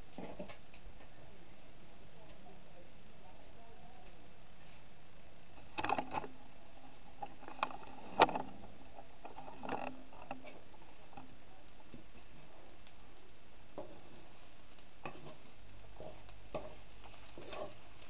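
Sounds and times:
metal fork scraping a skillet: 15.0s - 18.0s.

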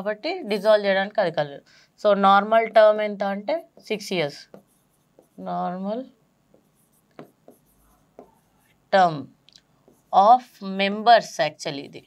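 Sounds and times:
pen writing on a board: 3.8s - 5.4s, 6.5s - 8.8s, 9.8s - 10.2s.

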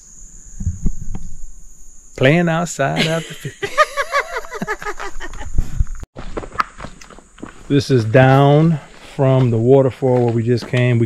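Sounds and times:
insects trilling: 0.0s - 6.0s, 6.7s - 11.0s
low thumps: 0.5s - 1.7s.

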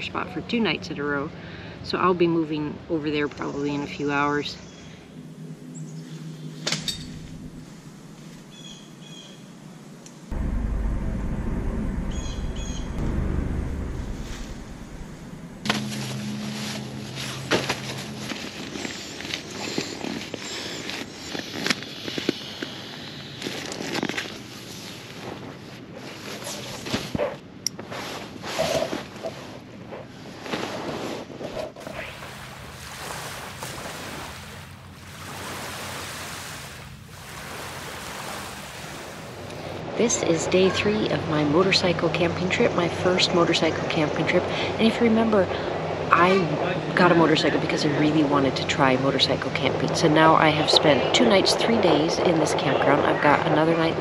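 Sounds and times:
low rumble: 4.1s - 19.4s
tent fabric and gear rustling: 15.6s - 35.7s.

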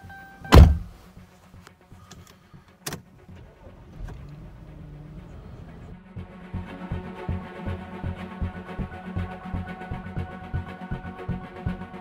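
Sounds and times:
car door thump: 0.5s - 1.0s
car engine hum: 2.9s - 10.2s.

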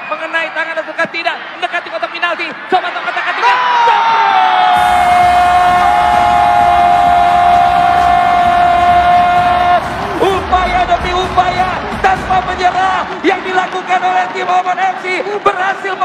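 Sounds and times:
arena crowd cheering: 0.0s - 16.0s
commentator shouting: 4.8s - 16.0s.

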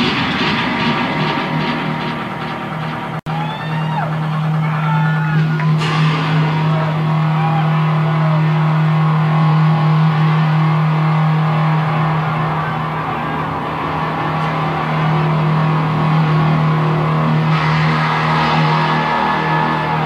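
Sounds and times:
loud low drone: 0.0s - 20.0s.

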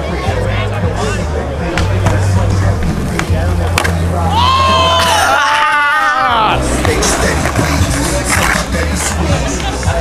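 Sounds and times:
skateboard clacking on concrete: 6.8s - 10.0s.

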